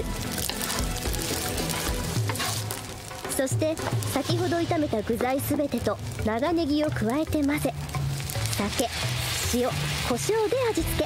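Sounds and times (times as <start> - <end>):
background music: 0.0 - 11.0
food sizzling in a frying pan: 0.0 - 11.0.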